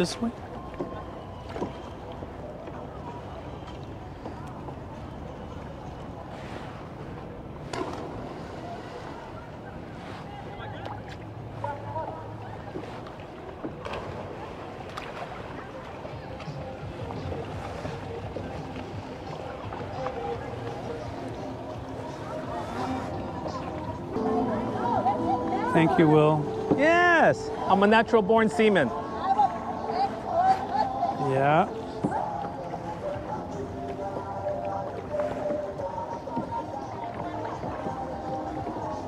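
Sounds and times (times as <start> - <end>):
faint distant voices: 0.0 - 39.0
water lapping around kayak: 0.0 - 39.0.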